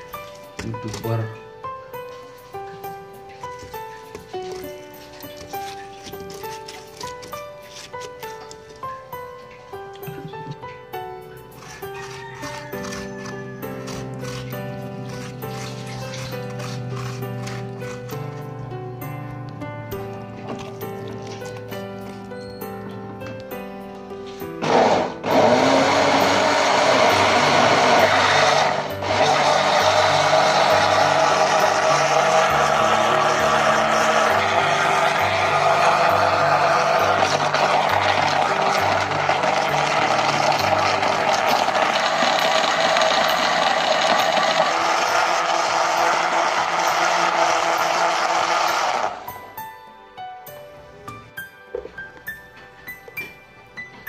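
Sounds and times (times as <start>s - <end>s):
background music: 0.0s - 54.0s
blender running: 24.6s - 49.3s.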